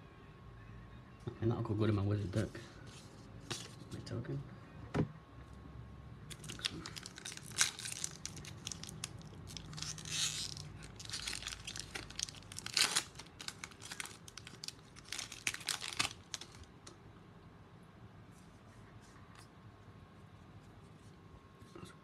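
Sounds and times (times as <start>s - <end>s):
foil wrapper crinkling and tearing: 6.3s - 16.8s.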